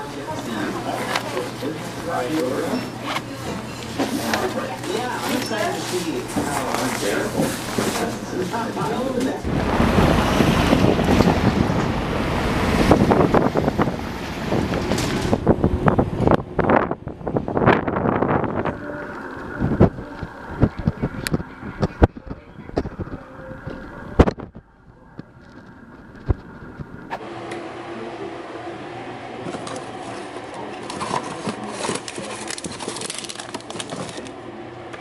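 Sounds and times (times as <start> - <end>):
street traffic: 9.0 - 27.2
wind buffeting microphone: 9.4 - 27.1
plastic bag rustling: 29.5 - 34.3.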